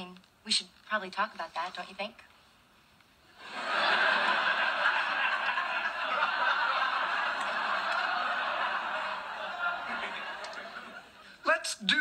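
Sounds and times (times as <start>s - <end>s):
studio audience laughing: 3.4s - 11.4s.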